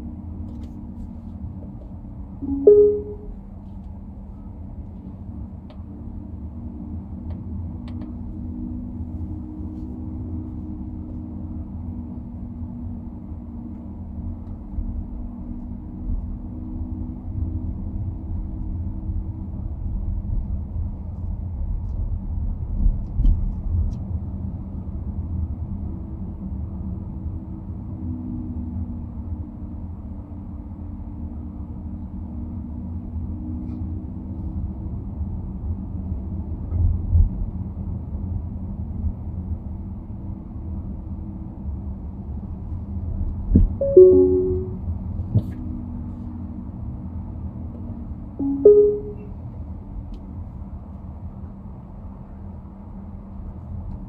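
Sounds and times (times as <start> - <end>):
short pitched tone: 2.4 - 3.4, 43.8 - 44.8, 48.4 - 49.3.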